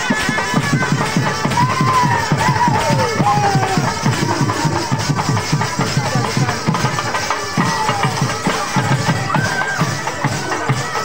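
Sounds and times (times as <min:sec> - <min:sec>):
quick even drumbeats: 0:00.0 - 0:11.0
reedy wind instrument melody: 0:00.0 - 0:11.0.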